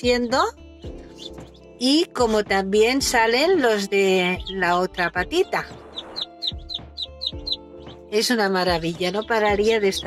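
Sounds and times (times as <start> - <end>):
faint background music: 0.0 - 10.0
ducklings peeping: 1.0 - 1.6, 3.7 - 8.0, 8.7 - 10.0.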